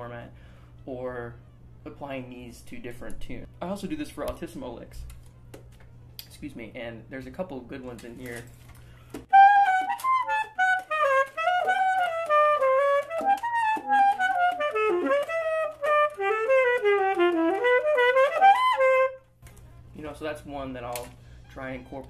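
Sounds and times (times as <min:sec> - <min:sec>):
saxophone jazz lick: 0:09.3 - 0:19.9.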